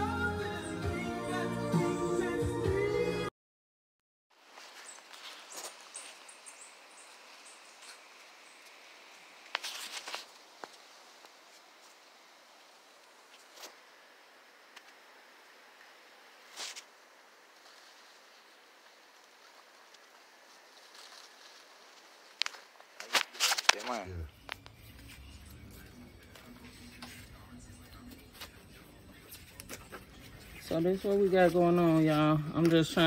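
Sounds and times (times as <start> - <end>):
faint outdoor background: 0.0 - 3.3, 4.3 - 33.0
branches and leaves rustling: 4.4 - 33.0.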